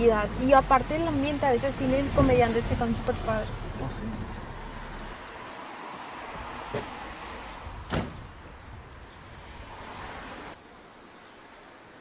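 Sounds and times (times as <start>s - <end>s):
street background noise: 0.0s - 12.0s
car door thud: 7.9s - 8.2s.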